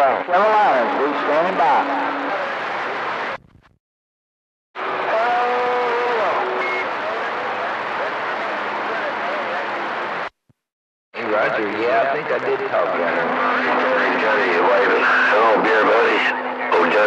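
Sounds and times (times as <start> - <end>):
radio static hiss: 0.0 - 3.8, 6.2 - 10.4, 11.2 - 17.0
garbled radio voice: 11.2 - 17.0.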